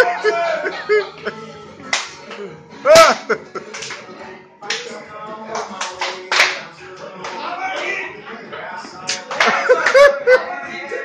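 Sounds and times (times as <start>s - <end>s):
country song with singer: 0.0s - 11.0s
sharp hand claps: 1.9s - 2.3s, 3.1s - 4.0s, 5.6s - 7.4s, 9.1s - 10.0s.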